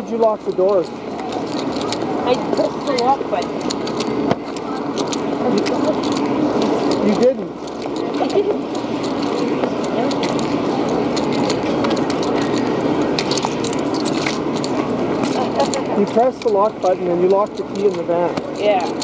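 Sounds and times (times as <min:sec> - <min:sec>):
indistinct voices: 0:00.0 - 0:19.0
outdoor hubbub: 0:00.0 - 0:19.0.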